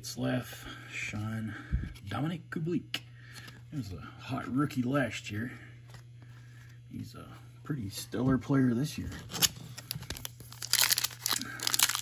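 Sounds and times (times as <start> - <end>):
foil wrapper crinkling: 9.1 - 12.0.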